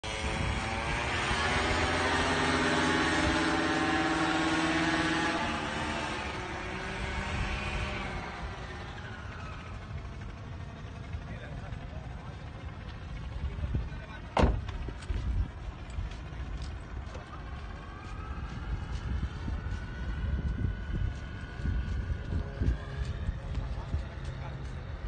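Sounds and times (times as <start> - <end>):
paramotor engine droning: 0.0 - 25.0.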